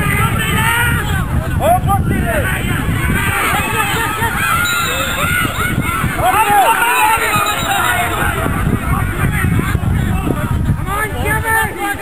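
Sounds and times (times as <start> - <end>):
wind rumble on microphone: 0.0 - 12.0
many voices shouting: 2.2 - 12.0.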